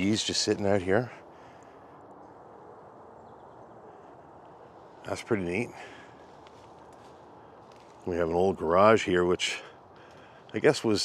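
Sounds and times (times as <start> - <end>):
distant bird chirps: 0.0 - 11.0
outdoor background noise: 0.0 - 11.0.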